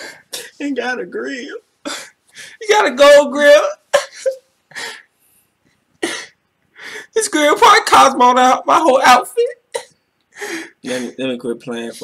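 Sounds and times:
man sobbing: 1.8 - 5.1, 6.0 - 8.1.

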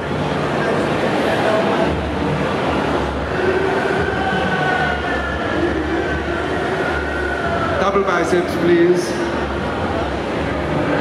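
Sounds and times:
indistinct crowd murmur: 0.0 - 11.0.

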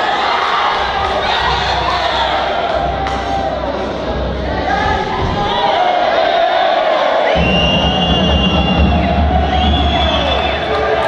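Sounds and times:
crowd shouting and cheering: 0.0 - 11.0
music: 0.0 - 11.0
low steady thudding: 7.4 - 11.0.

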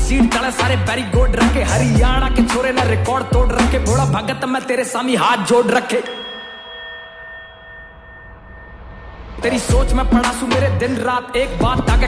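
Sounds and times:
rap song: 0.0 - 6.4, 9.4 - 12.0
bell-like chime ringing: 5.4 - 10.7.

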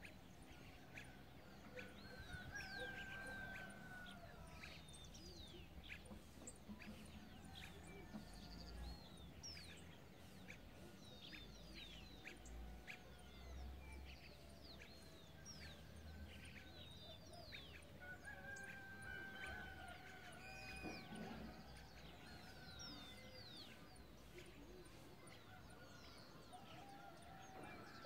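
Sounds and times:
faint birdsong chirps: 0.0 - 28.0.

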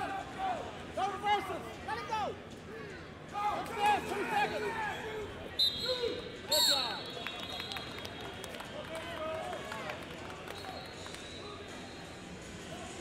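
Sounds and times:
murmur of crowded hall: 0.0 - 13.0
short high whistle blasts: 5.6 - 8.1.

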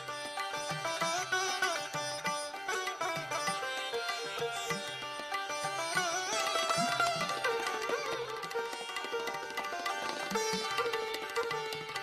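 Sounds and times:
sitar plucked notes: 0.0 - 12.0.

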